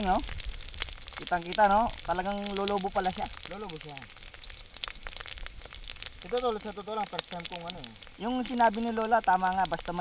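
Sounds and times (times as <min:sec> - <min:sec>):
deep-frying sizzle with crackles: 0:00.0 - 0:10.0.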